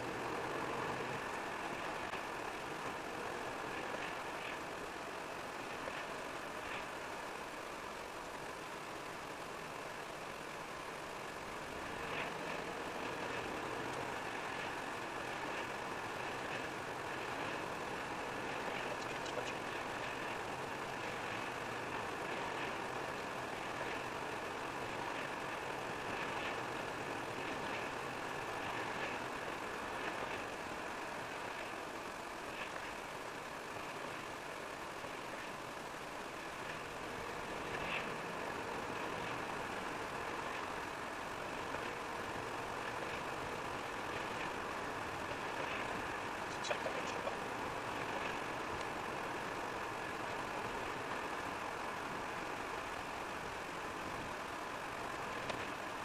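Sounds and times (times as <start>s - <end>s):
car engine hum: 0.0s - 56.0s
tyres on wet asphalt: 0.0s - 56.0s
faint ticks: 0.1s - 10.3s, 11.1s - 56.0s.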